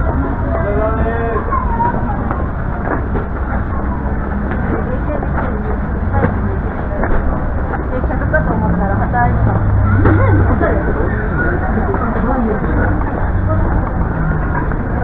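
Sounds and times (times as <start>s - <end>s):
deep hum: 0.0s - 15.0s
indistinct voices: 0.0s - 15.0s
street noise rumble: 0.0s - 15.0s.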